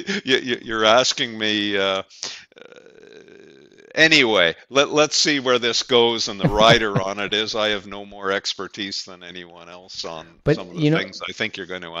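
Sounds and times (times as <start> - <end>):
man saying uh: 0.0 - 12.0.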